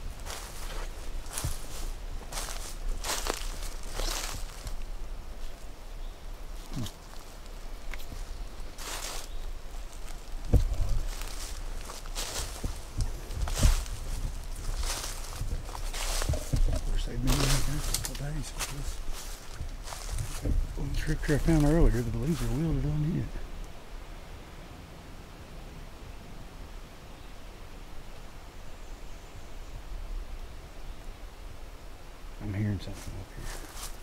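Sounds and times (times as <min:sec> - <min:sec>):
footsteps crunching through dry leaves: 0:00.0 - 0:23.4, 0:32.9 - 0:34.0.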